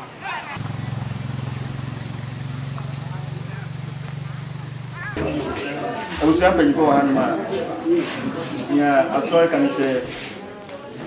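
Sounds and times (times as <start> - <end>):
engine running: 0.6 - 7.9.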